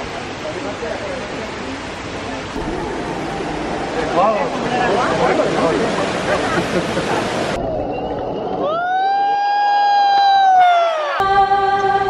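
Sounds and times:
long horn-like note: 2.6 - 6.2.

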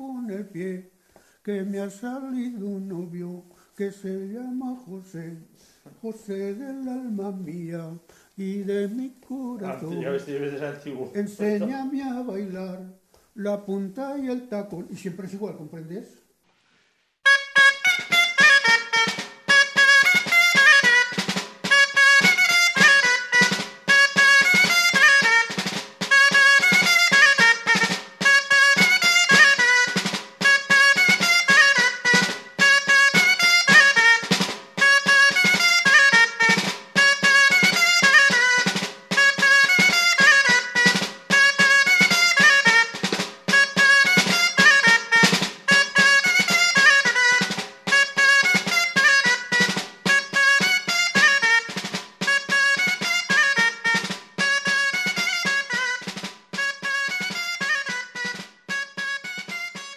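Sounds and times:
double-reed shawm playing: 6.3 - 12.7, 17.2 - 59.9
drum beating steady rhythm: 7.3 - 12.5, 17.2 - 59.9.

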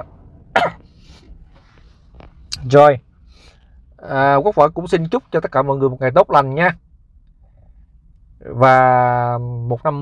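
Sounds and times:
man coughing: 0.5 - 0.9.

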